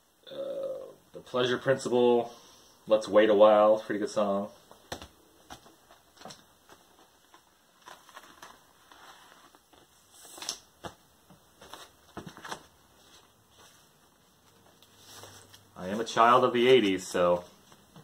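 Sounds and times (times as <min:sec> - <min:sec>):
cardboard record jacket rustling: 0:04.6 - 0:18.0.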